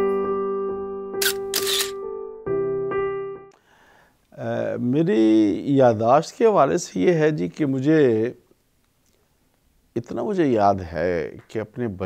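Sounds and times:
short noisy clicks: 1.2s - 2.0s.

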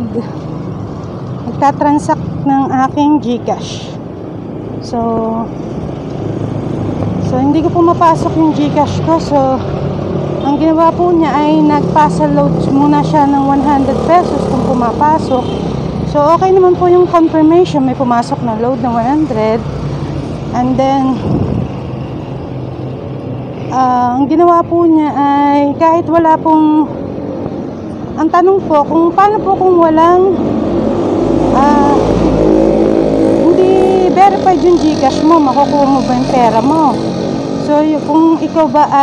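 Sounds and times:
street traffic: 0.0s - 39.0s
vehicle engine rumbling: 0.0s - 39.0s.

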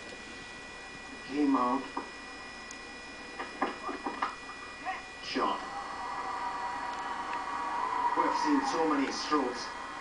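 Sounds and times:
television background noise: 0.0s - 10.0s.

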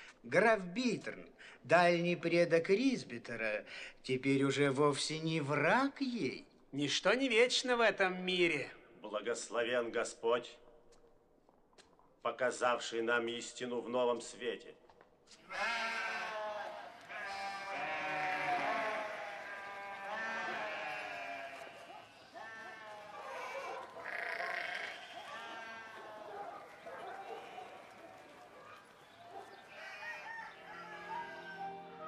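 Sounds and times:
flock of sheep bleating: 15.4s - 32.0s.

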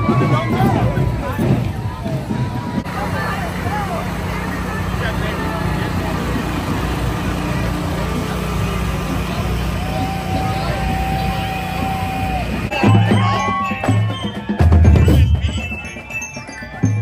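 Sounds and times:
tractor engine running: 0.0s - 13.0s
crowd voices calling out: 0.0s - 17.0s.

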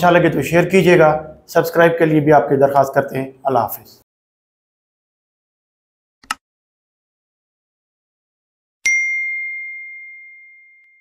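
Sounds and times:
notification bell ding: 8.8s - 11.0s.

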